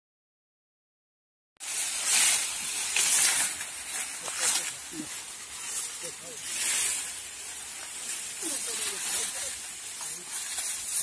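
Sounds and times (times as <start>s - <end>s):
dry sugarcane leaves rustling: 1.6s - 11.0s.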